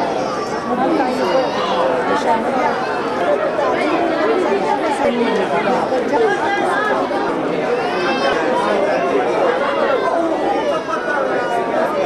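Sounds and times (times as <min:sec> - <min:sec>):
men chattering: 0:00.0 - 0:12.0.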